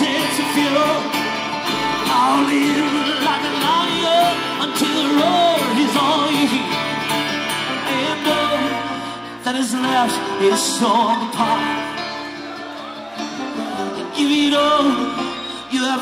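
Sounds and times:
bluegrass band playing: 0.0s - 16.0s.

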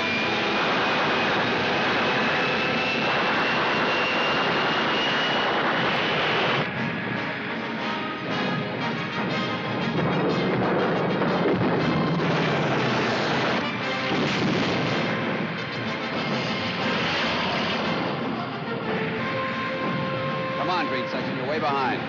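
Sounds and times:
anti-aircraft fire: 0.0s - 18.7s
aircraft piston engines droning: 0.0s - 22.0s
orchestral score: 0.0s - 22.0s.

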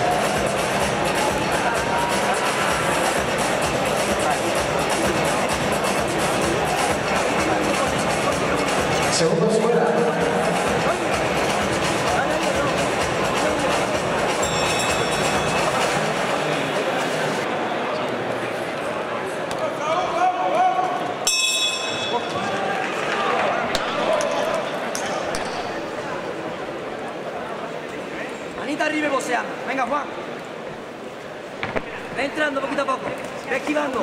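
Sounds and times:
background music: 0.0s - 16.9s
crowd chatter and shouting: 0.0s - 34.0s
boxing ring bell: 14.4s - 16.1s, 21.3s - 22.5s.

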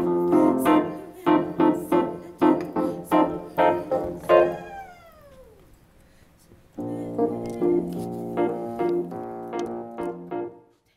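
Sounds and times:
electronic keyboard chords: 6.8s - 10.7s.

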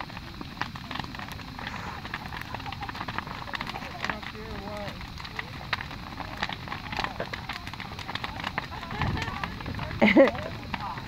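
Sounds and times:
bonfire crackling and popping: 0.0s - 11.0s
faint distant voices: 0.1s - 11.0s.

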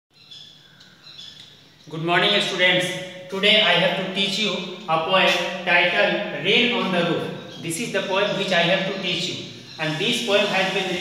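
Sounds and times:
birds chirping: 0.1s - 11.0s
man speaking: 1.9s - 11.0s.

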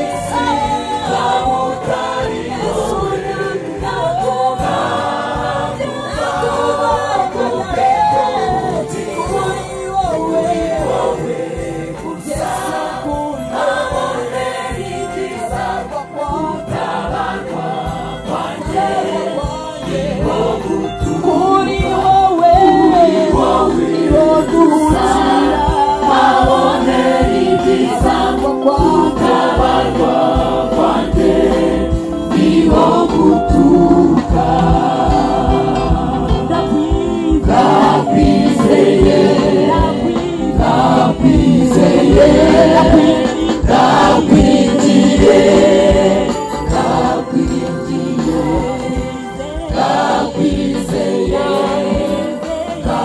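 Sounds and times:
mixed choir singing gospel: 0.0s - 53.0s
steady beat: 0.0s - 53.0s.

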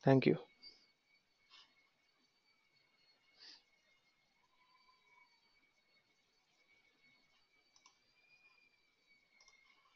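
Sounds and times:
high-pitched electrical whine: 0.0s - 9.9s
faint clicks: 7.7s - 8.6s, 9.3s - 9.9s.

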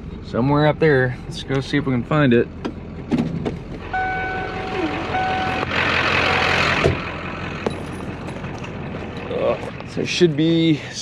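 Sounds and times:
truck door warning beep: 3.9s - 5.7s.

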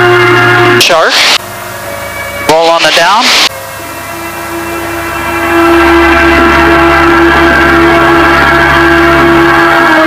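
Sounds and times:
aircraft engine and propeller droning: 1.3s - 10.0s.

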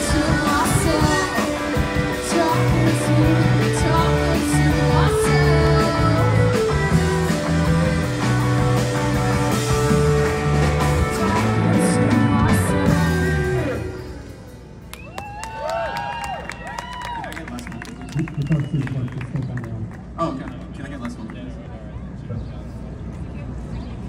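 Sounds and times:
woman singing: 0.0s - 7.1s, 10.9s - 13.8s
electric guitar: 0.0s - 15.0s
drums: 0.0s - 19.4s
crowd clapping and cheering: 14.8s - 21.4s.

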